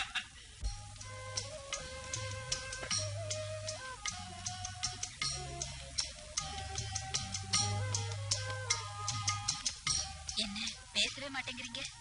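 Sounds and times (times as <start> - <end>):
held melodic notes: 0.6 - 12.0
ticking percussion: 0.6 - 12.0.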